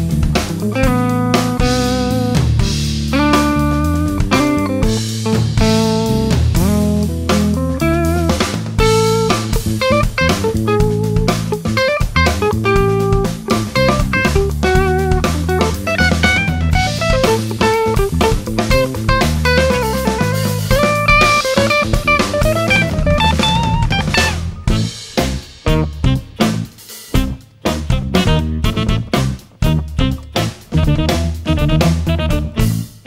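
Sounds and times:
drum kit and bass backing: 0.0s - 33.0s
electric guitar melody: 0.0s - 33.0s.

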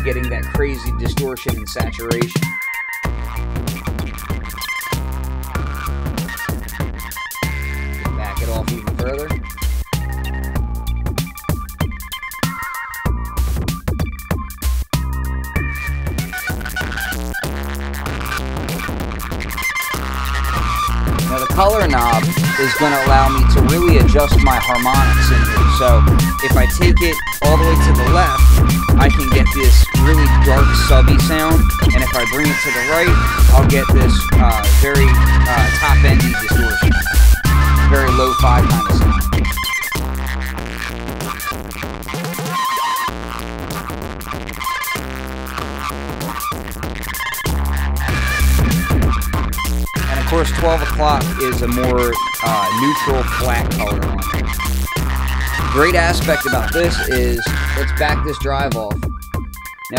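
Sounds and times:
deep bass notes: 0.0s - 2.2s, 3.1s - 12.0s, 13.0s - 42.2s, 43.1s - 59.7s
distorted drum machine beat: 0.0s - 59.9s
deep kick drum: 26.0s - 32.2s, 33.1s - 39.7s, 46.5s - 50.3s, 53.2s - 54.9s, 58.9s - 59.6s.

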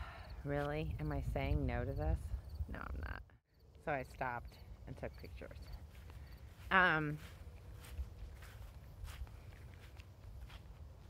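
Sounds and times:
faint footsteps: 3.6s - 11.0s.

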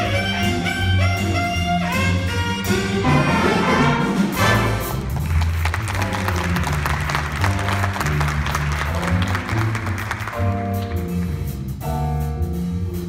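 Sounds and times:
drums: 0.0s - 13.0s
horn chords: 0.0s - 13.0s
walking bass line: 0.0s - 13.0s
audience applauding: 4.9s - 11.4s.

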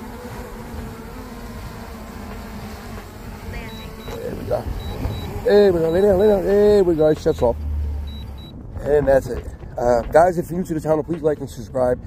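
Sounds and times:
drone propellers buzzing: 0.0s - 10.1s.

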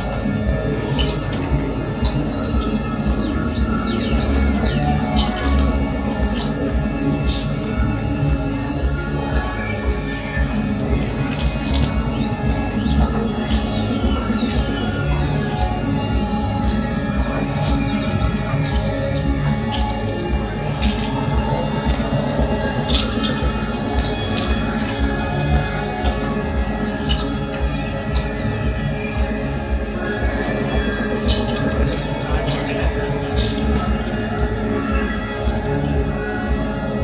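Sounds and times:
high synth tones gliding downward: 0.0s - 37.0s
low synth bass notes: 0.0s - 37.0s.

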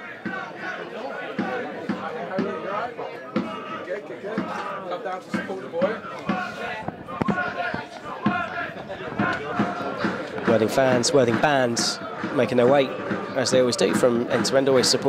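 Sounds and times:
football supporters chanting: 0.0s - 15.0s
drum beating: 0.2s - 2.7s, 3.3s - 15.0s.

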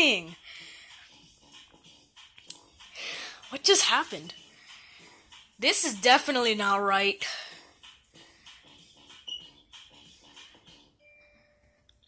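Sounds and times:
bouncy cartoon music: 0.0s - 12.0s.

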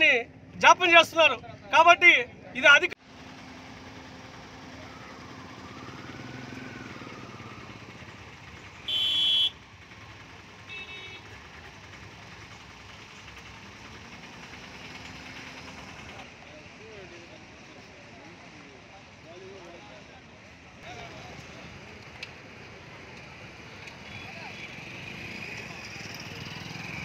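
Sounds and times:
traffic engines idling: 0.0s - 27.0s
faint horn toot: 8.8s - 9.6s
vehicle horn blast: 8.8s - 9.6s, 10.6s - 11.4s.

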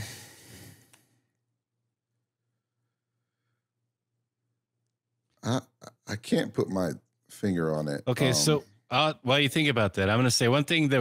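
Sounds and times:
man speaking: 5.4s - 11.0s.

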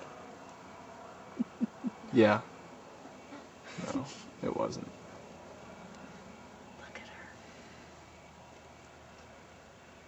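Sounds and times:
steady background hiss: 0.0s - 10.0s
faint whisper: 6.8s - 7.5s.

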